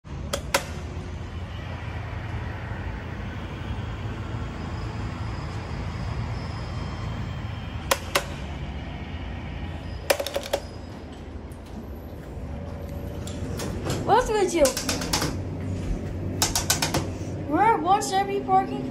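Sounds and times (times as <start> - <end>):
elevator doors sliding open: 9.7 - 15.5.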